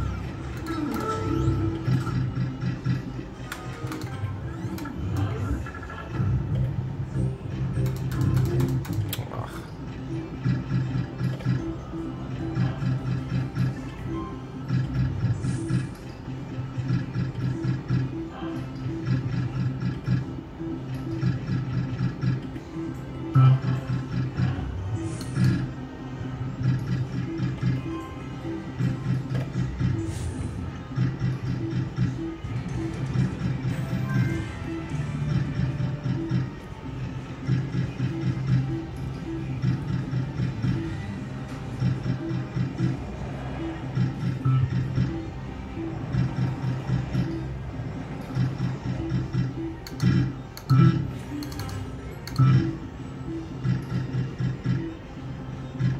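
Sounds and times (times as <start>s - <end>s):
slot machine jingles and reel spins: 9.8s - 55.9s.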